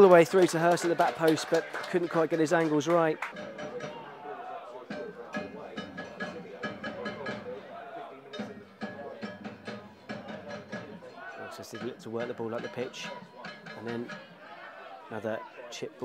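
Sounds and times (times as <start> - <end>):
faint voices: 0.2 - 16.0
music with percussive beat: 3.2 - 14.6.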